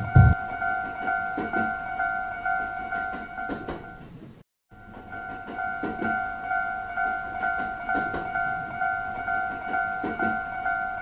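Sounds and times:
train wheel clatter: 0:04.8 - 0:10.7.

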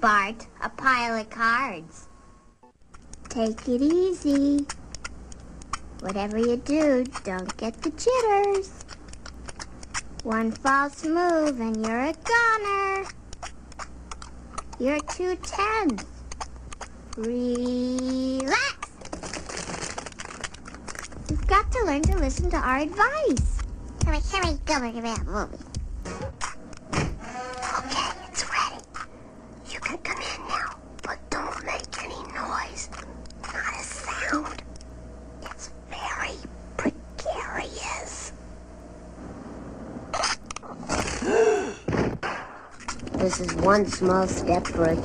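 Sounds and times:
child's voice: 0:00.0 - 0:02.0, 0:03.3 - 0:04.8, 0:06.0 - 0:08.8, 0:10.2 - 0:13.2, 0:14.7 - 0:16.1, 0:17.1 - 0:19.0, 0:21.3 - 0:25.6, 0:27.6 - 0:28.9, 0:29.6 - 0:34.6, 0:35.4 - 0:38.4, 0:43.2 - 0:45.0
house of cards collapsing: 0:40.2 - 0:43.6.

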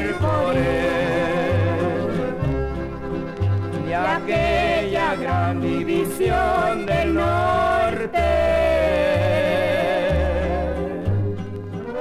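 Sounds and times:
corrido music from vinyl record: 0:00.0 - 0:12.0
repeated bass notes: 0:00.0 - 0:12.0.

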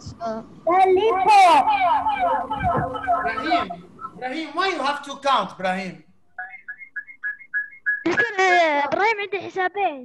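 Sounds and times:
electronic ringtone chirps: 0:02.1 - 0:03.8, 0:06.4 - 0:08.1.

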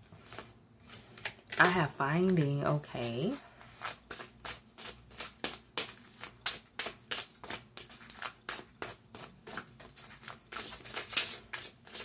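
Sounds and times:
cards being shuffled: 0:03.6 - 0:12.0.

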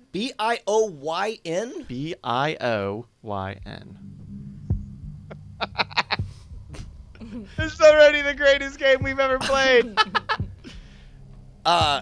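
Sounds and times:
low steady hum: 0:01.8 - 0:12.0
man laughing: 0:05.3 - 0:08.4, 0:09.3 - 0:10.8.

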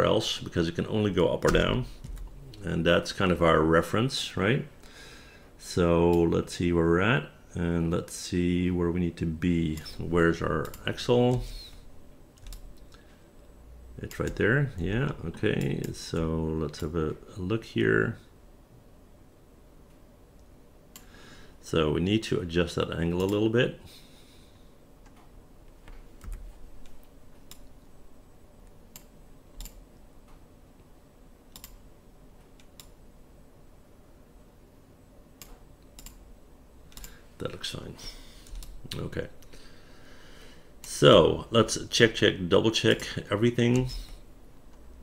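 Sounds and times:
computer mouse clicks: 0:25.0 - 0:27.7, 0:28.9 - 0:30.4, 0:31.5 - 0:31.8, 0:32.4 - 0:33.0, 0:35.4 - 0:36.2, 0:36.9 - 0:37.2.

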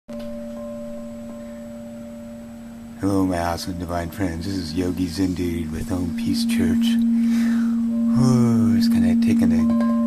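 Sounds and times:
crystal singing bowl ringing: 0:00.1 - 0:10.0.

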